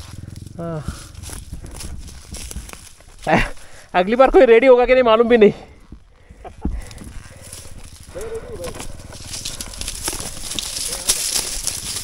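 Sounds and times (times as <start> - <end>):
low rumble: 0.0 - 3.3, 5.5 - 12.0
twigs crackling and snapping: 0.0 - 3.9, 5.8 - 12.0
footsteps through dry brush: 0.0 - 4.0, 5.8 - 12.0.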